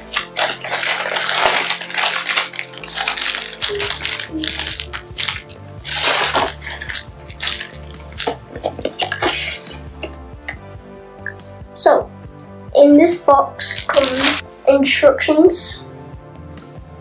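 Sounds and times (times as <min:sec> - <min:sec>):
plastic bags crinkling: 0:00.0 - 0:09.8, 0:13.6 - 0:14.4
background music: 0:00.0 - 0:17.0.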